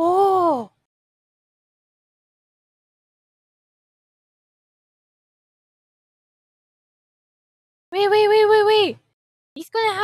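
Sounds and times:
woman exclaiming oooh: 0:00.0 - 0:00.7.

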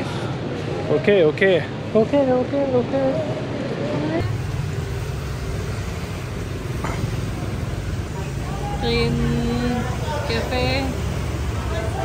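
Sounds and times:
passing motorbikes and cars: 0:03.1 - 0:12.0.

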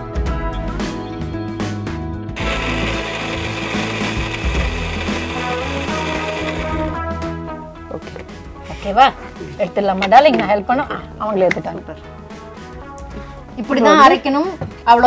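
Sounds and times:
background music: 0:00.0 - 0:15.0
mixer grinder running: 0:02.4 - 0:07.4.

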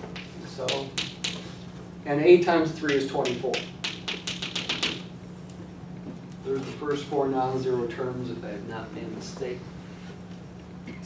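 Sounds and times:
chalk tapping on chalkboard: 0:00.0 - 0:01.6, 0:02.8 - 0:05.1.

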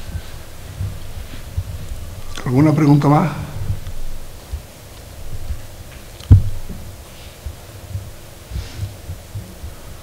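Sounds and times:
faint rustling: 0:00.0 - 0:10.0
soft low thumps: 0:00.0 - 0:10.0.

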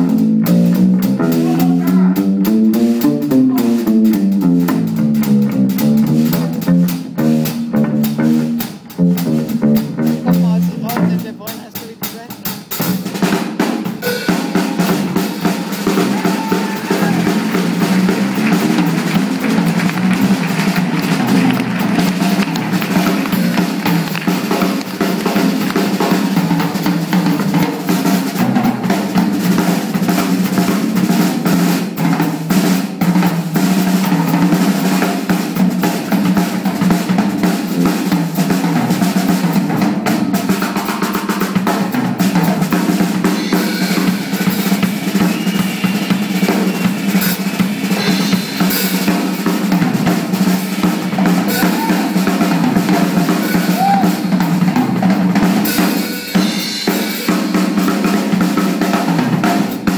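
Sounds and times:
electric bass line: 0:00.0 - 0:11.4, 0:14.7 - 0:27.7
blues band playing: 0:00.0 - 0:59.9
snare and bass drum hits: 0:00.0 - 0:59.9.

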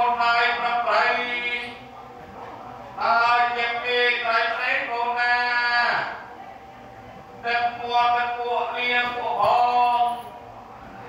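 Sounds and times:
man chanting a prayer: 0:00.0 - 0:02.0, 0:03.0 - 0:06.3, 0:07.4 - 0:10.4.

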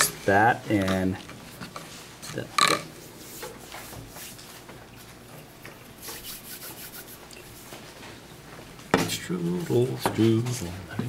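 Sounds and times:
rubbing and handling noises: 0:00.0 - 0:10.7.

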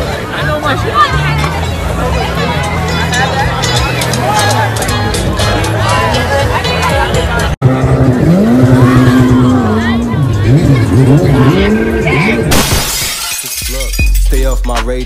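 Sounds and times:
crowd chatter: 0:00.0 - 0:15.0
jet ski engine revving: 0:07.6 - 0:12.5.

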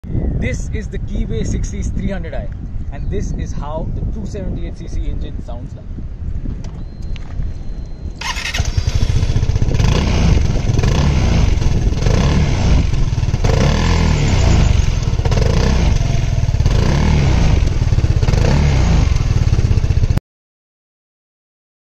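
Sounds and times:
scooter engine throttle blips: 0:06.7 - 0:20.2.

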